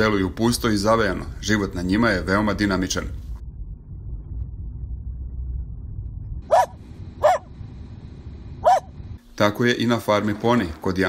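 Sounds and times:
car driving rumble: 0.0 - 11.0
small dog barking: 6.5 - 7.5, 8.6 - 8.9.

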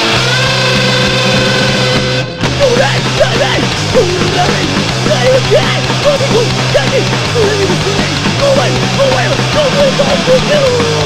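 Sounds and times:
hardcore punk band playing: 0.0 - 11.0.

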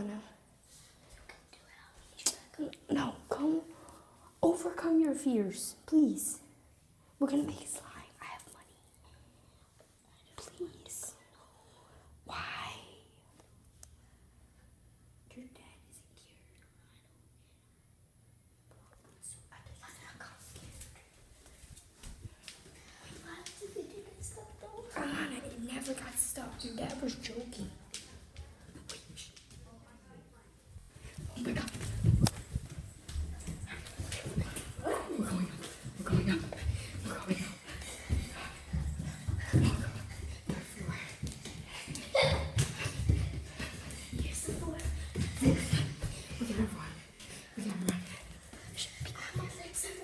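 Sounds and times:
person whispering: 7.4 - 9.3, 10.1 - 13.3.

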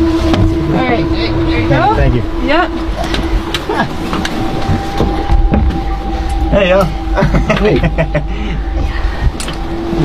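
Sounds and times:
steady hum: 0.0 - 10.0
steady low rumble: 0.0 - 10.0.

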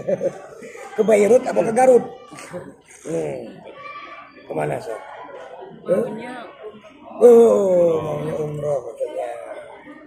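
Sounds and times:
people in conversation: 0.0 - 10.0.

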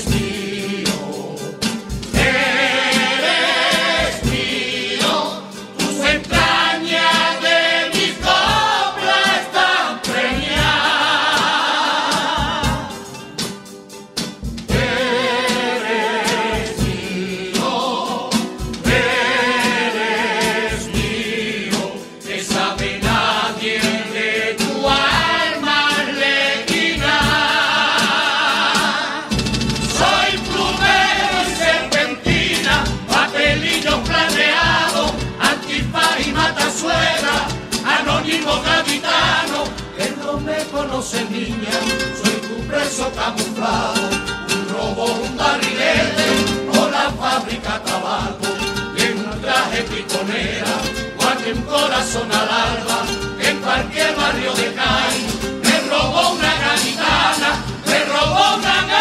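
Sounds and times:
group singing in chorus: 0.0 - 13.7, 14.6 - 59.0
guitar: 0.0 - 59.0
rhythmic accompaniment: 0.0 - 59.0
bass drum beating: 18.6 - 19.6, 29.3 - 40.8.

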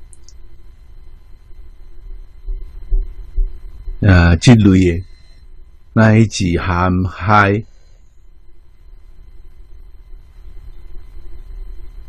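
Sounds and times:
faint steady hum: 0.0 - 12.0
soft deep thumps: 2.4 - 3.7.

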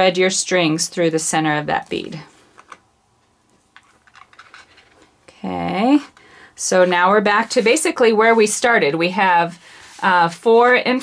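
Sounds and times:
soft rubbing of cords: 5.9 - 11.0.

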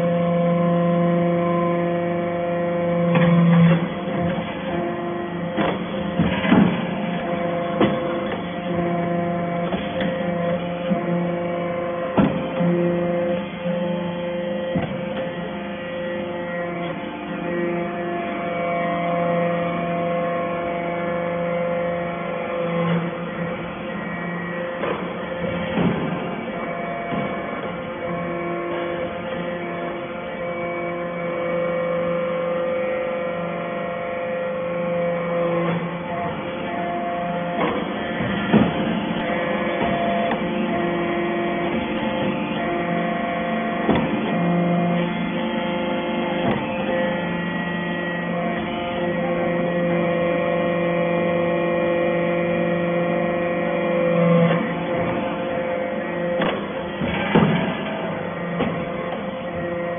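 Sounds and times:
hydraulic press motor humming: 0.0 - 59.9
sharp knocks: 56.4 - 59.2.

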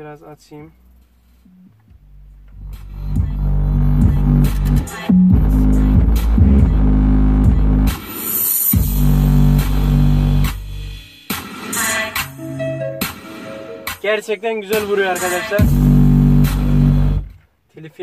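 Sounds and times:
bass-heavy music through car stereo: 0.8 - 17.4.

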